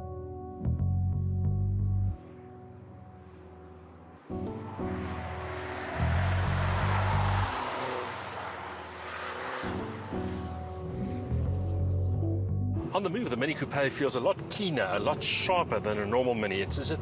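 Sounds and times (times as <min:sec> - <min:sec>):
background music with bass line: 0:00.0 - 0:03.1, 0:09.8 - 0:12.9
car rushing past: 0:03.3 - 0:11.8.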